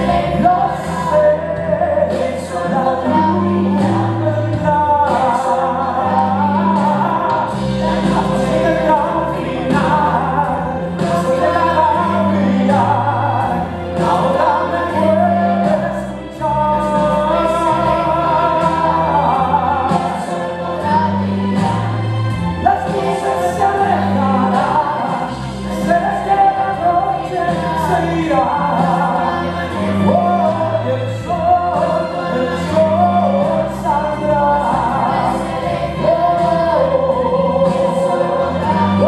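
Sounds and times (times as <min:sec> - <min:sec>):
boy singing: 0:00.0 - 0:21.9, 0:22.6 - 0:39.0
man singing: 0:00.0 - 0:39.0
musical accompaniment with choir: 0:00.0 - 0:39.0.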